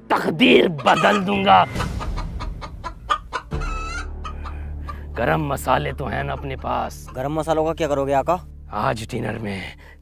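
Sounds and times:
chicken clucking: 0:00.6 - 0:04.6.

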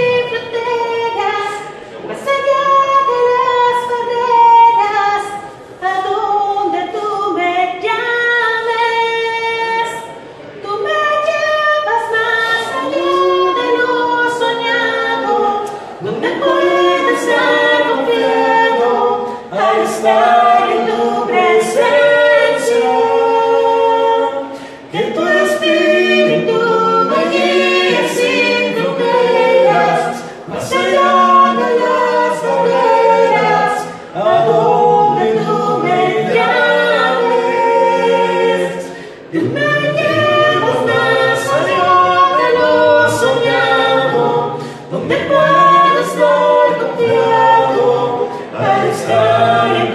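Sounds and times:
group singing a hymn a cappella: 0:00.0 - 0:49.9.

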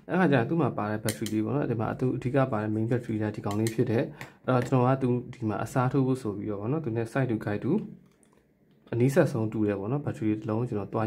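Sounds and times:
man speaking: 0:00.0 - 0:08.0, 0:08.9 - 0:11.0.

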